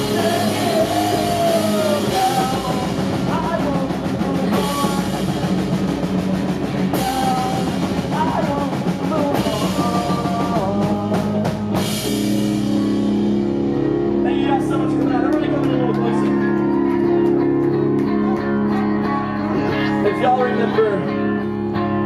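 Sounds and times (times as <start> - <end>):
man singing: 0.0 - 5.6, 6.7 - 12.3, 19.1 - 21.3
drum kit: 0.0 - 21.0
electric guitars: 0.0 - 22.0.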